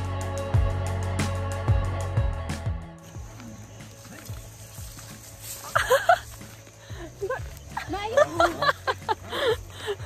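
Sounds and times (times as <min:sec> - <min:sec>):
faint scattered sounds: 0:03.0 - 0:10.0.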